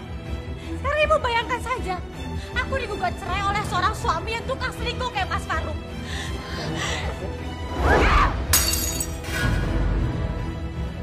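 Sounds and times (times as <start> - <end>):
dramatic background music: 0.0 - 11.0
crockery shattering: 8.5 - 9.4.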